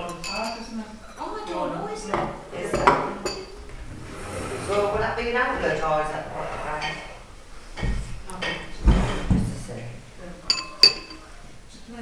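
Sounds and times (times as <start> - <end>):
metal spoon clinking ceramic bowl: 0.0 - 0.7, 2.7 - 3.6, 10.5 - 11.2.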